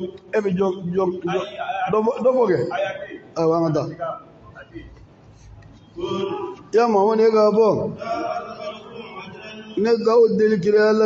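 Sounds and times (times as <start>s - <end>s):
man preaching: 0.0s - 5.0s, 6.0s - 11.0s.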